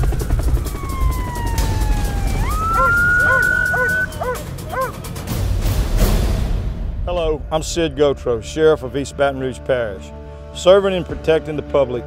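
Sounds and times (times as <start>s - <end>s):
police siren wailing: 0.0s - 5.0s
background music: 0.0s - 12.0s
dog barking: 2.8s - 5.0s.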